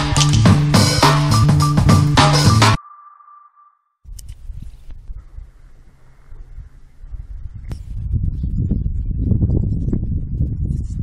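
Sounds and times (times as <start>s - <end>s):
rhythmic electronic music: 0.0s - 2.9s
ringing ping tone: 2.8s - 4.0s
faint low outdoor rumble: 4.1s - 9.4s.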